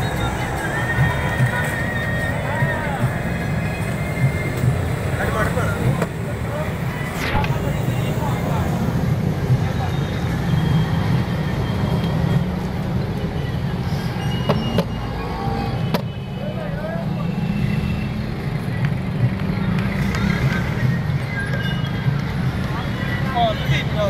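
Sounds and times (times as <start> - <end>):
people talking: 0.0 - 10.4, 22.6 - 24.0
traffic rumble: 0.0 - 24.0.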